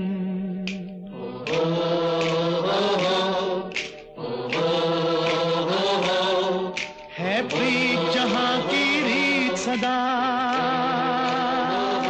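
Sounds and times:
man singing long notes: 7.2 - 12.0.

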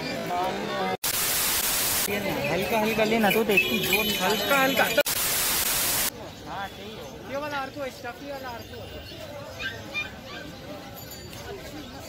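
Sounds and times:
voices at outdoor market: 0.0 - 12.0
white noise static hiss: 1.0 - 2.1, 5.1 - 6.1.

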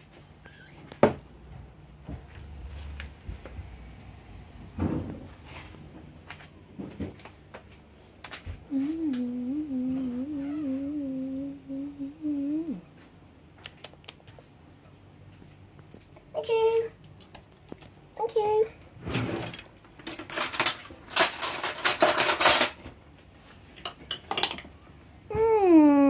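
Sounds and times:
person humming: 8.6 - 12.9, 25.3 - 26.0.

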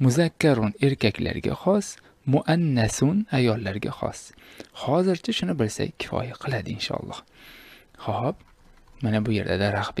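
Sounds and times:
soft hiss: 0.0 - 10.0.

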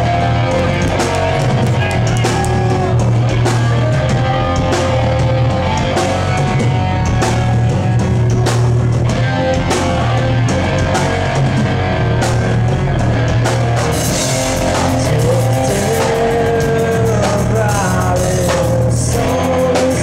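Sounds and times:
drum kit: 0.0 - 20.0
electric guitars: 0.0 - 20.0.

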